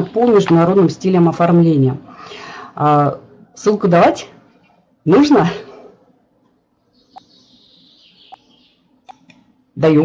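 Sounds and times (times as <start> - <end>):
computer clicks: 9.0 - 9.5.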